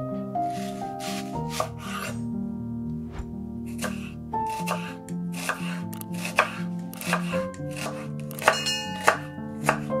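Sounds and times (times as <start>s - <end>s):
background music: 0.0s - 10.0s
knife chopping onion on board: 3.8s - 10.0s.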